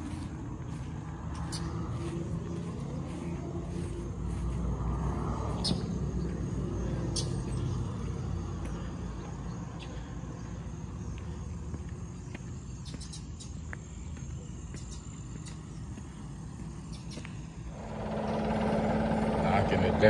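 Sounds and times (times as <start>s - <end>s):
low outdoor rumble: 0.0s - 20.0s
steady engine hum: 0.0s - 20.0s.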